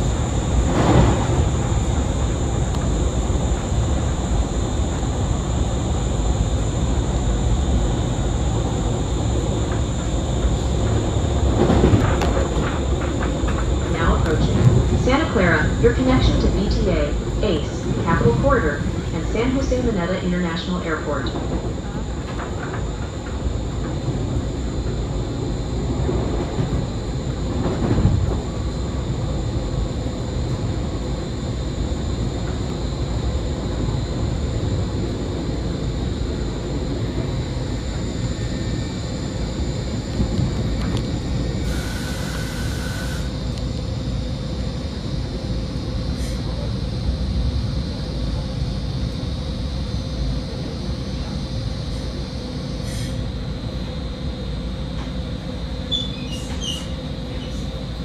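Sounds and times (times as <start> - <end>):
constant hum: 0.0 - 58.0
train wheels rumbling on rail: 0.0 - 58.0.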